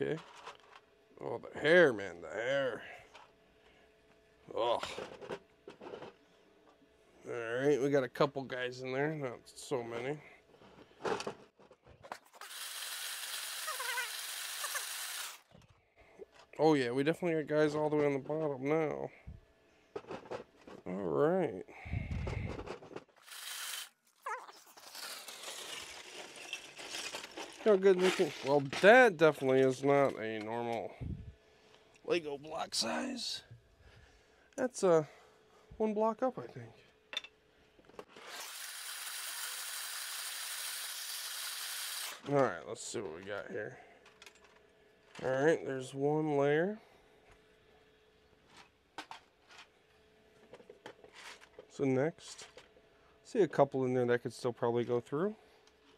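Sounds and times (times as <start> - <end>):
plastic pieces rattling in trays: 24.6 - 29.0.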